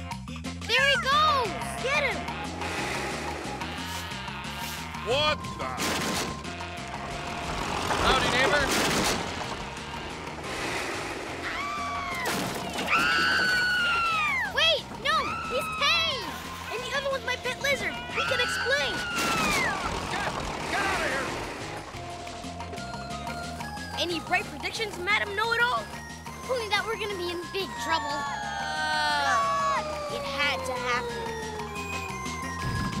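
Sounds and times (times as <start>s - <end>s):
cartoon background music: 0.0s - 33.0s
wordless yelps and cries: 3.6s - 5.2s, 11.4s - 20.4s, 27.6s - 32.6s
loud crash: 7.7s - 13.2s.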